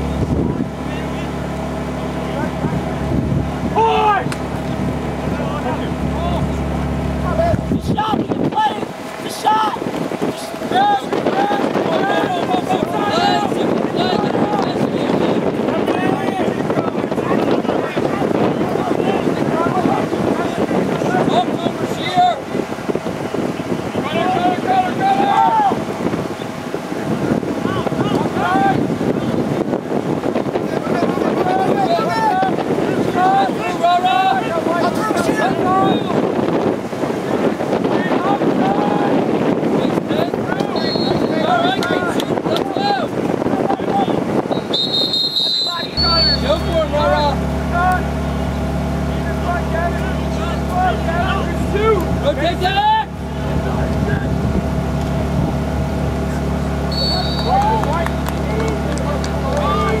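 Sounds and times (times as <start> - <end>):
low motor hum: 0.0 - 60.0
players and spectators shouting: 3.7 - 4.4, 5.4 - 22.5, 23.6 - 27.0, 27.6 - 28.9, 30.8 - 36.2, 40.1 - 53.4, 56.3 - 60.0
short high whistle blasts: 40.8 - 41.4, 44.5 - 46.5, 56.9 - 57.6.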